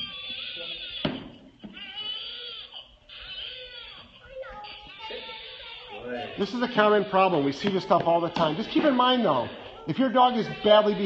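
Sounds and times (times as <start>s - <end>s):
baby crying: 0.0s - 11.0s.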